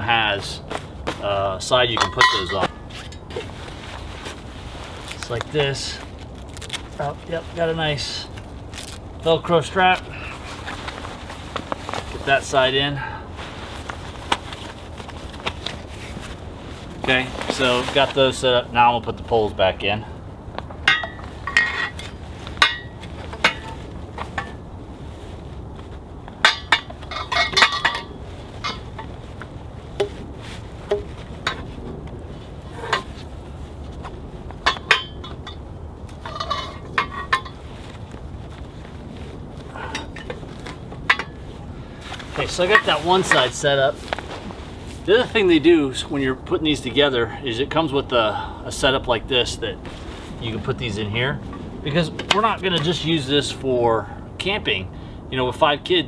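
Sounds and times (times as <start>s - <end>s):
metal tubes clinking and knocking: 1.8s - 3.6s, 20.8s - 24.6s, 26.4s - 29.2s, 34.6s - 37.9s, 39.8s - 41.6s.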